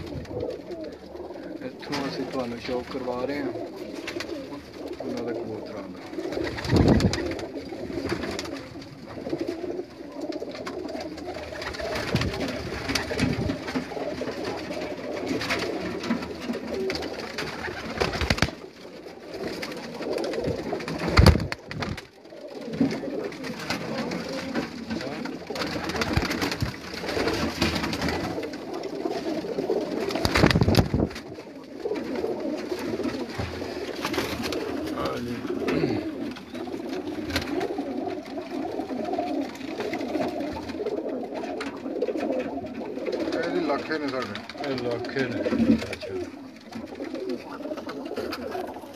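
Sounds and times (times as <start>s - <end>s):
pigeons cooing: 0.0s - 48.9s.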